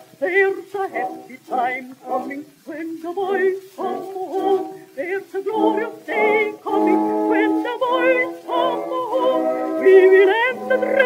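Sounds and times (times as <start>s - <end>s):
contralto with orchestra on old record: 0.0s - 11.0s.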